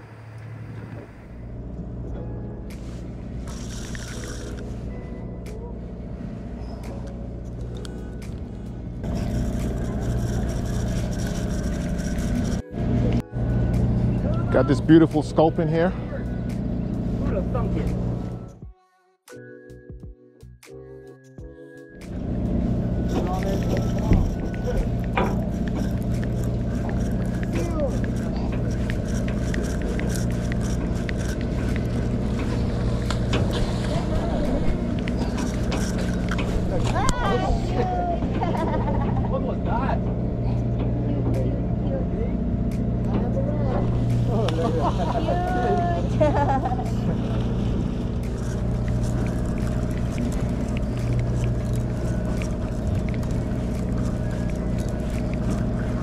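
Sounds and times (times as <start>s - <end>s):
boat engine humming: 0.0s - 18.6s, 22.0s - 56.0s
faint voices: 22.9s - 56.0s.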